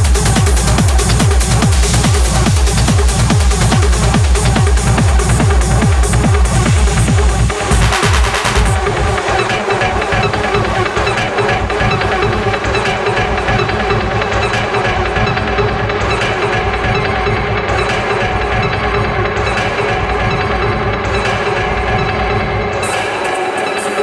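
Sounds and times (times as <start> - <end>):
hard techno music: 0.0 - 24.0.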